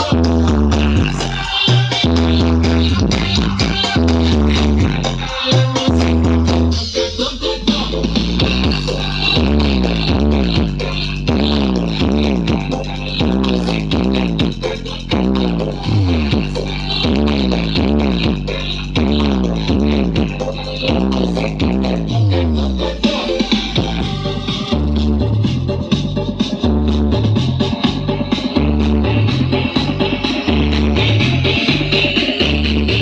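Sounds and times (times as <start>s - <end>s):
electronic dance music: 0.0s - 33.0s.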